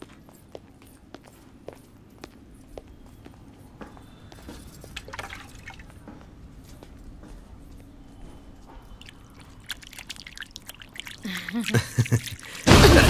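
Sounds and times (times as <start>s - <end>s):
low steady background noise: 0.0s - 13.0s
water dripping and splashing: 4.4s - 13.0s.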